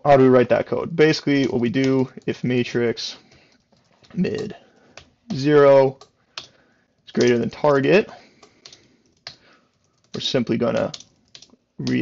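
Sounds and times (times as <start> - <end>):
computer keyboard keystrokes: 3.3 - 12.0.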